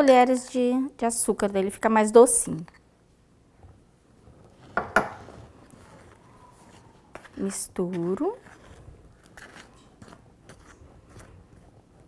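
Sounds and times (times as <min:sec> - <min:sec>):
faint spoon scraping: 0:04.5 - 0:11.8.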